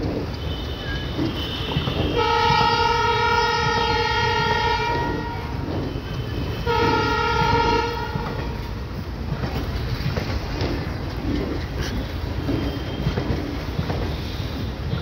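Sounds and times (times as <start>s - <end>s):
railway coaches rumbling past: 0.0s - 15.0s
train horn blasts: 0.3s - 9.0s.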